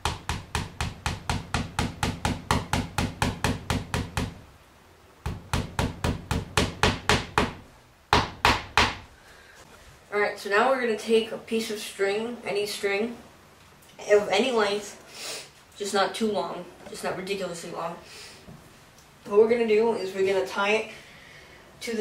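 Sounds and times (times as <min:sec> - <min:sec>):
hammer tapping nail into wood: 0:00.0 - 0:04.4, 0:05.3 - 0:09.0.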